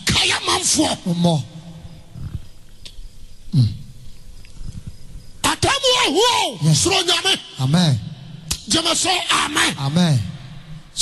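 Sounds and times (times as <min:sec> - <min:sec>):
low background noise: 0:00.0 - 0:11.0
man grunting into microphone: 0:03.5 - 0:03.9.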